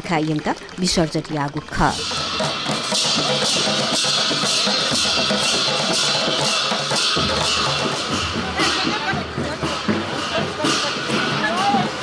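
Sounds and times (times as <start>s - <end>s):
large barrel drums beating: 0.1s - 12.0s.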